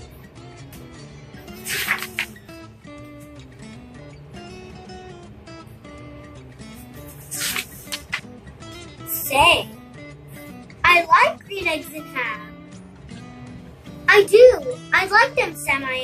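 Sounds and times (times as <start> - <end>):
soft background music: 0.0 - 16.0
book pages rustling: 1.6 - 2.4, 7.1 - 8.2.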